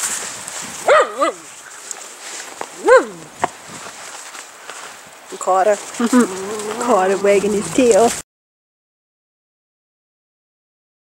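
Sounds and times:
dog barking: 0:00.8 - 0:01.5, 0:02.8 - 0:03.3.

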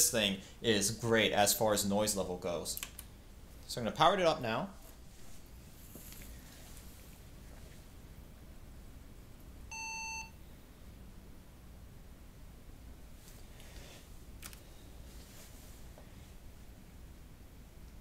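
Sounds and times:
faint steady hum: 0:00.0 - 0:18.0
computer beep: 0:09.7 - 0:10.4.

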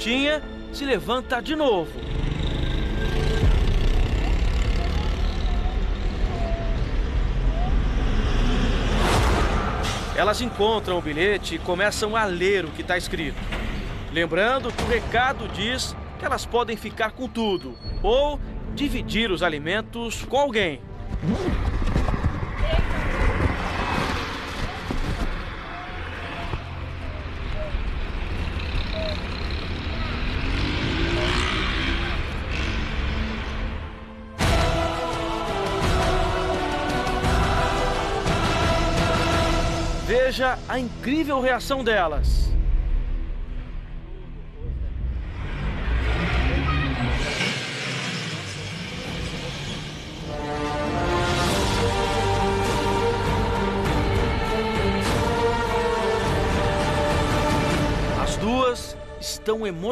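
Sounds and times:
road traffic rumble: 0:00.0 - 0:19.8, 0:20.6 - 0:41.0, 0:43.4 - 0:59.9
engine speeding up past: 0:02.0 - 0:11.4, 0:28.2 - 0:33.8.

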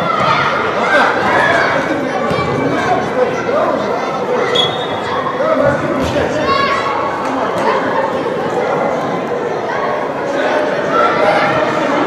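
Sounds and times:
background hubbub: 0:00.0 - 0:12.0
players calling out in echoing hall: 0:00.0 - 0:12.0.

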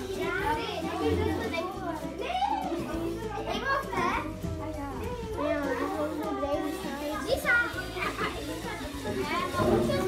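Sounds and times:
background music: 0:00.0 - 0:10.0
children chattering: 0:00.0 - 0:10.0.

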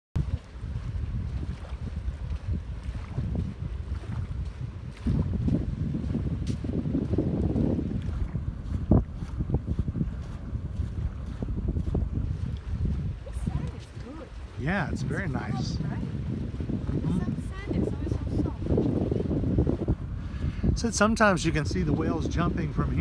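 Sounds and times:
wind buffeting microphone: 0:00.2 - 0:23.0.

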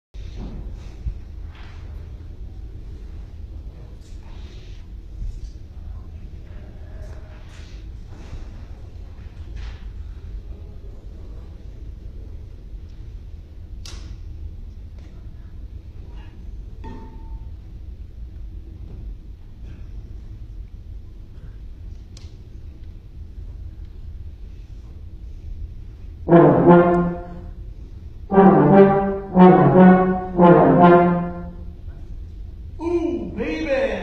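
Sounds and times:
low hall room rumble: 0:00.2 - 0:34.0.

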